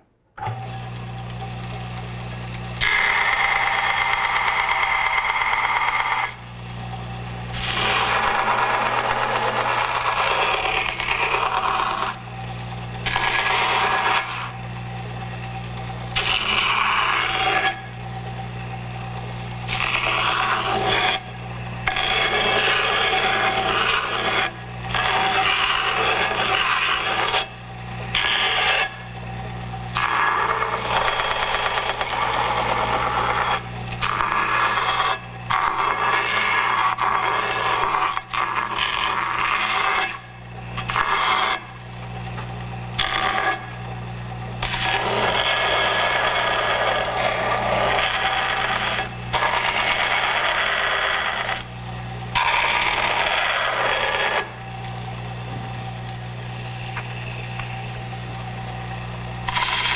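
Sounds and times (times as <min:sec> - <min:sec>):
belt grinder motor hum: 0:00.4 - 0:59.9
plastic scraping on sanding belt: 0:07.6 - 0:12.2, 0:13.0 - 0:14.6, 0:19.7 - 0:27.5, 0:44.6 - 0:51.7, 0:52.3 - 0:54.6, 0:59.5 - 0:59.9.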